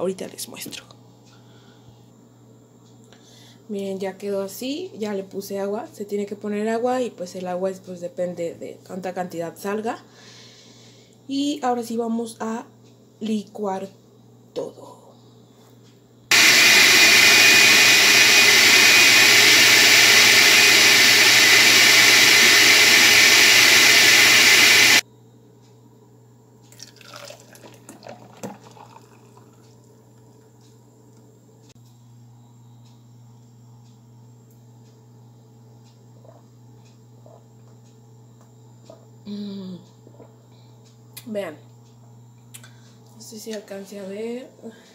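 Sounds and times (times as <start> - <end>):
blender running: 16.3 - 25.0
juice sloshing being poured: 26.7 - 29.7.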